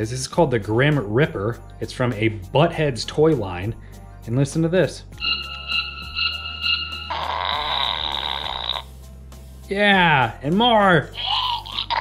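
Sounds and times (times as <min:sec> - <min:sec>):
toy raspy fart sound: 0:07.1 - 0:09.0, 0:11.2 - 0:12.0.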